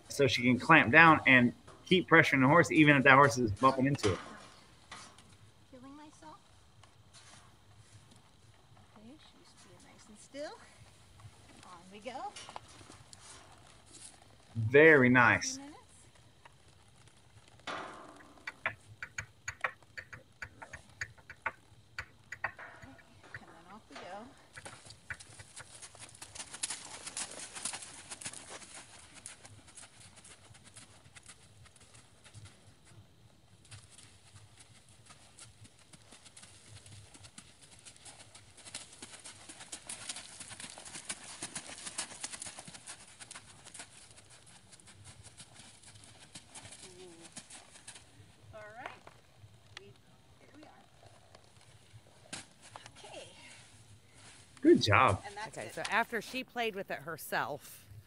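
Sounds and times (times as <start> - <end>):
horse hooves on dirt: 0.0 - 58.0
sharp clicks: 18.2 - 23.5.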